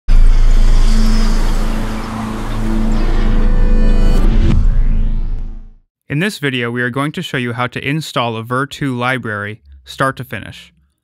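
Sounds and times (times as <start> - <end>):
loud low boom: 0.1 - 5.8.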